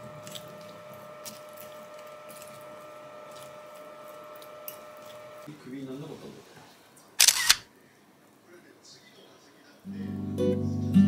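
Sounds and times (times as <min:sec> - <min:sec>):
camera shutter click: 0:07.2 - 0:07.7.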